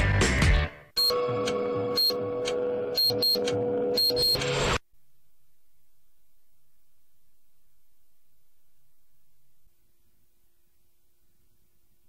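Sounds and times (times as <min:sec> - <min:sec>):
short high beep and tick: 0:03.0 - 0:04.4
steady hum: 0:04.8 - 0:12.0.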